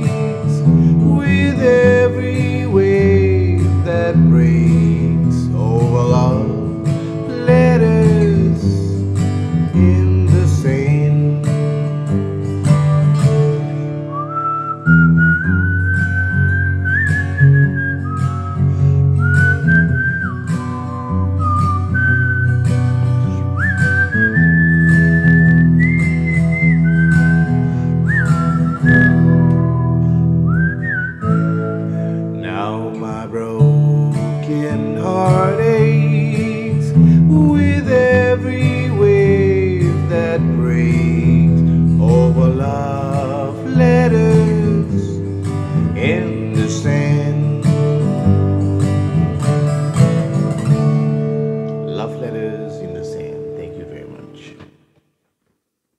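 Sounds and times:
man whistling melody: 0.0 - 50.7
acoustic guitar strumming: 0.0 - 55.1.

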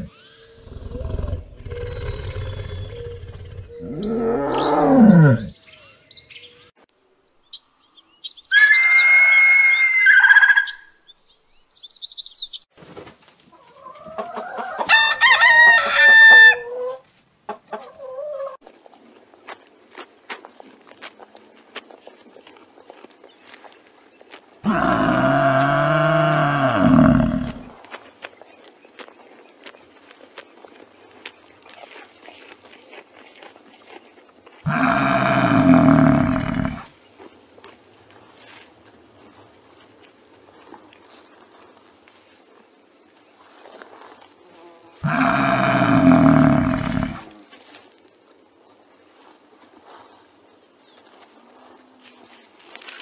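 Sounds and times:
loud bird call: 8.5 - 10.9
hen clucking: 13.5 - 18.6
rooster crowing: 14.0 - 17.0
water buffalo calling: 24.6 - 27.6, 34.6 - 36.9, 45.0 - 47.3.

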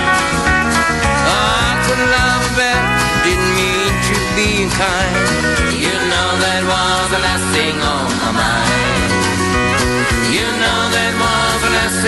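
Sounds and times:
sliding lead instrument line: 0.0 - 6.7
country band playing: 0.0 - 12.0.

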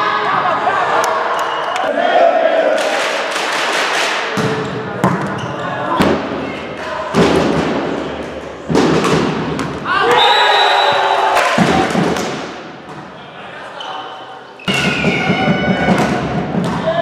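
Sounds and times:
players shouting: 9.8 - 12.2.

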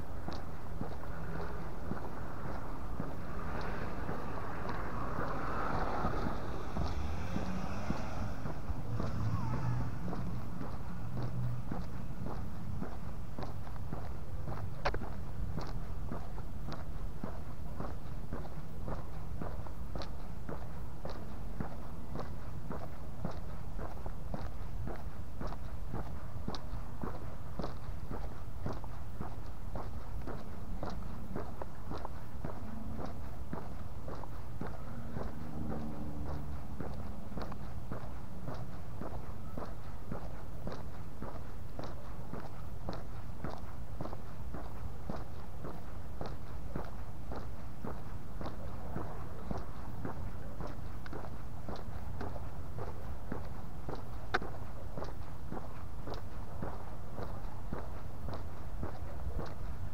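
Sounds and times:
footsteps on pavement: 0.0 - 59.9
low steady rumble: 0.0 - 59.9.

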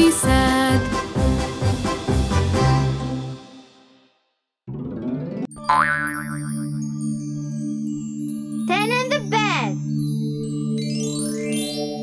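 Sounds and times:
children's song intro music: 0.0 - 4.0
cartoon boing sound effect: 5.6 - 6.6.

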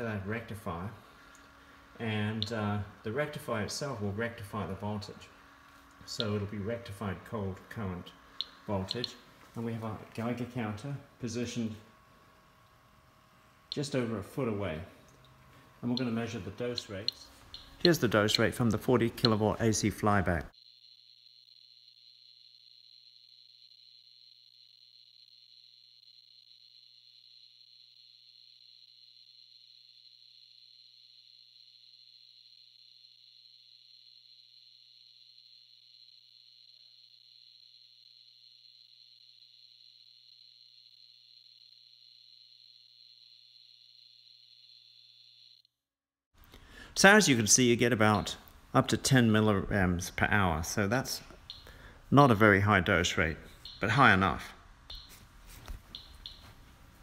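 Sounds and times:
low electrical hum: 0.0 - 45.6, 46.4 - 57.0
high-pitched electrical whine: 0.0 - 45.7, 47.0 - 57.0.

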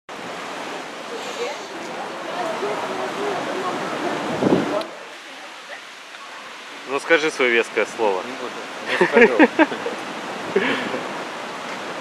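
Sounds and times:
sea surf: 0.1 - 12.0
faint indistinct voices: 1.0 - 6.8
wind gust buffeting microphone: 1.7 - 5.0
wind rushing: 2.6 - 4.8.

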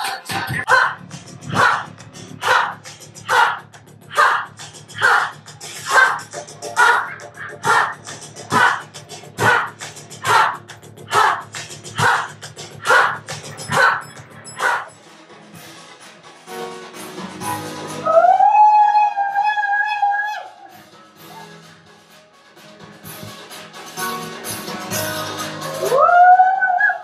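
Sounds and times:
background music: 0.0 - 27.0
group shouting in unison: 0.7 - 6.2, 6.8 - 14.0.

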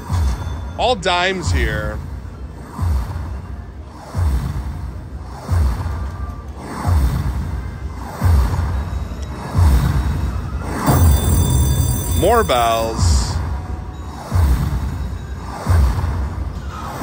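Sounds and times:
slot machine win music: 9.5 - 14.4.

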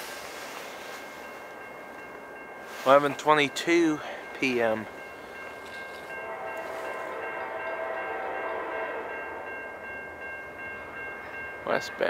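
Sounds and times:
steady high ringing: 0.0 - 12.0
distant train horn blast: 5.7 - 9.6.

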